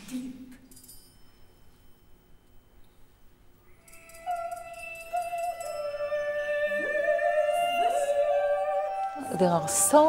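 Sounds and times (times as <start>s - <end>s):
opera high held tones: 3.7s - 10.0s
sliding glissandi: 3.8s - 10.0s.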